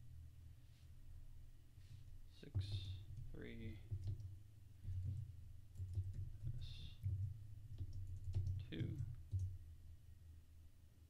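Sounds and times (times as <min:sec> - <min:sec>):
keyboard typing: 0:02.5 - 0:04.3, 0:04.9 - 0:09.6.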